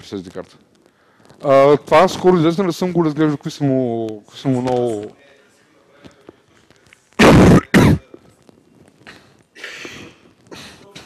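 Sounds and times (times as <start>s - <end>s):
man coughing: 7.2s - 8.2s.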